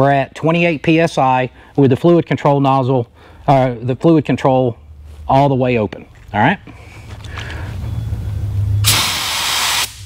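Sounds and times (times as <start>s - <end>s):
steady low hum: 0.0s - 10.0s
spray gun air hiss: 8.8s - 10.0s.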